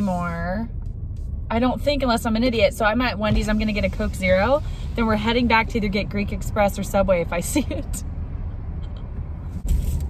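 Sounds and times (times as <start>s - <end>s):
car engine idling: 0.0s - 9.8s.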